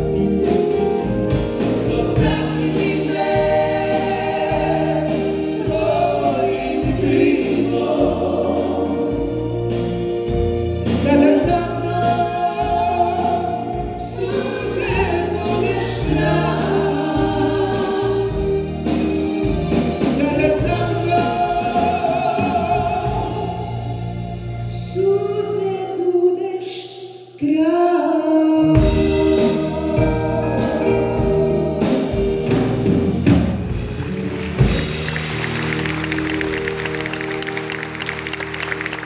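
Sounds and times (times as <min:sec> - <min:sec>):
live band playing: 0:00.0 - 0:26.4, 0:28.3 - 0:39.0
backing vocal harmonies: 0:00.0 - 0:39.0.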